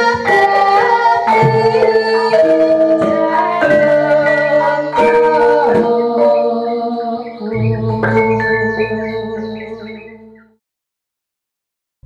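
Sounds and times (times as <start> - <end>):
gamelan music: 0.0 - 10.6.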